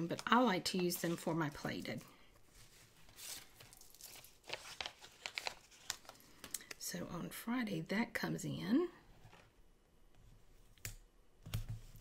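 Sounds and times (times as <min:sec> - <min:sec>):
paper sticker peeling and crinkling: 0:03.1 - 0:06.7.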